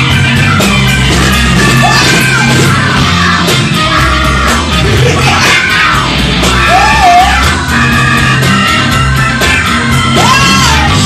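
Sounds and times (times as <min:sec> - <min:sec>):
live blues band playing: 0:00.0 - 0:11.0
woman singing and shouting: 0:01.7 - 0:11.0.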